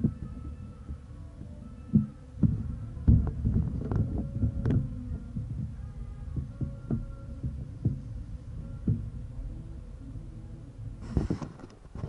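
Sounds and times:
microphone handling thuds: 0:00.0 - 0:09.3, 0:11.0 - 0:12.0.

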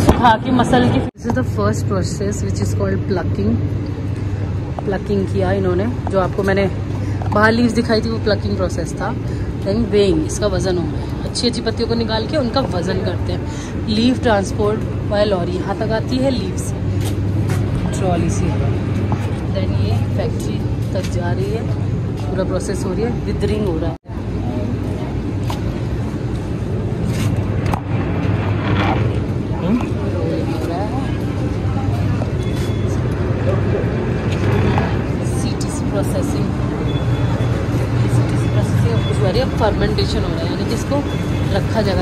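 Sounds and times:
machinery humming: 0:00.0 - 0:42.0
faint voices talking: 0:29.0 - 0:42.0.

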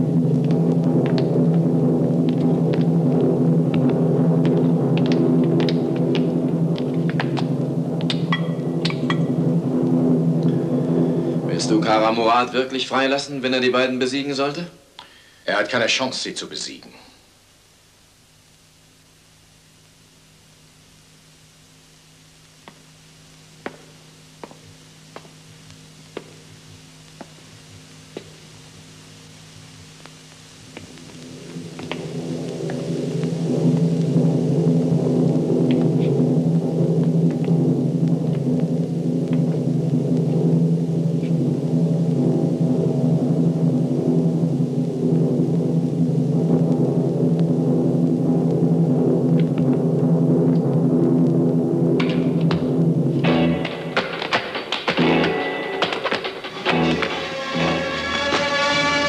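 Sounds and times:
sharp percussive hits: 0:08.1 - 0:09.5, 0:53.2 - 0:59.0
dramatic orchestral chords: 0:54.9 - 0:59.0.

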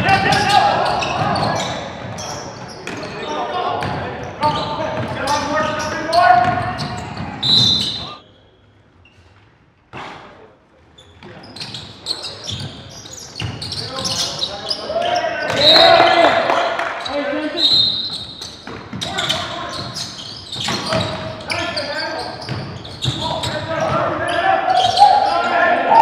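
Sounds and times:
basketball bouncing on court: 0:03.8 - 0:05.8, 0:06.4 - 0:07.9, 0:18.1 - 0:21.4, 0:22.4 - 0:24.2
players shouting in hall: 0:14.8 - 0:16.9, 0:24.0 - 0:26.0.

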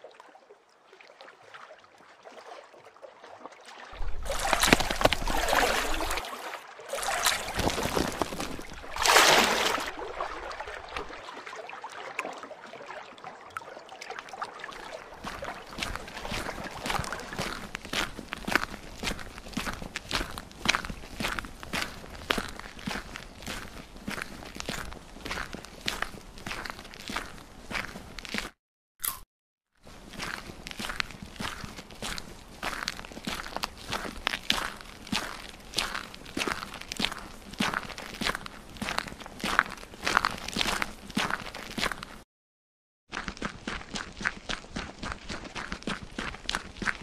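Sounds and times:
footsteps: 0:04.0 - 0:11.1, 0:15.2 - 0:28.6.

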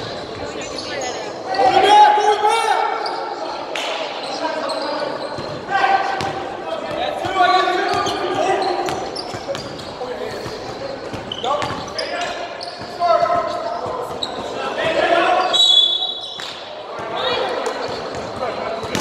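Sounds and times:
players calling and shouting: 0:00.0 - 0:19.0.

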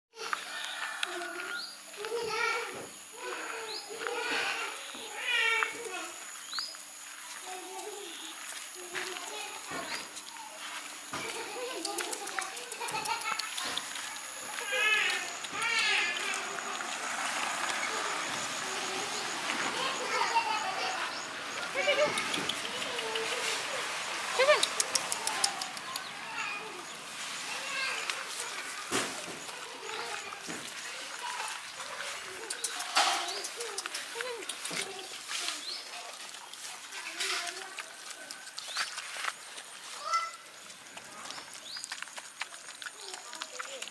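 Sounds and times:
indistinct voices: 0:07.2 - 0:38.8
dogs eating from metal tray: 0:08.4 - 0:19.2, 0:29.4 - 0:43.9.

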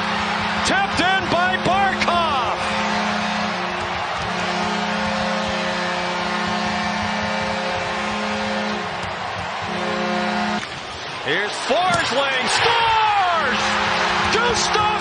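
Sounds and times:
arena goal horn blast: 0:00.0 - 0:10.7, 0:13.1 - 0:15.0
crowd cheering: 0:00.0 - 0:15.0.

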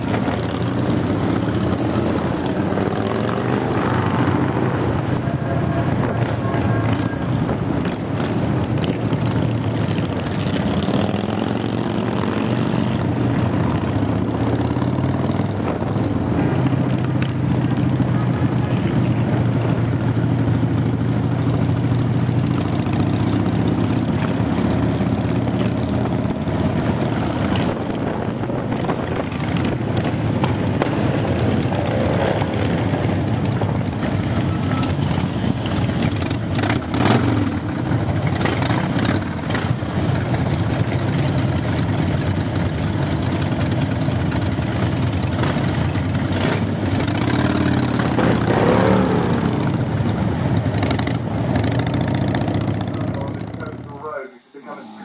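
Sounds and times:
motorcycle engines running: 0:00.0 - 0:55.0.

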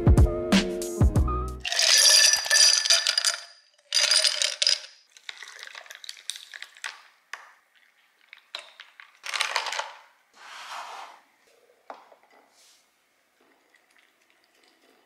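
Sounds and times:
ice cubes clinking in a glass: 0:01.6 - 0:06.9, 0:08.5 - 0:10.0
straw stirring ice: 0:01.6 - 0:07.0, 0:07.8 - 0:10.0
drink poured over ice: 0:01.6 - 0:07.1.

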